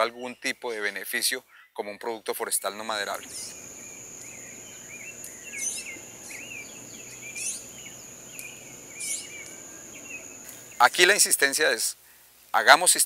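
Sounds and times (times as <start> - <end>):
bird chirping: 2.9 - 11.2
loud bird calls: 3.1 - 11.1
high-pitched insect drone: 3.2 - 10.8.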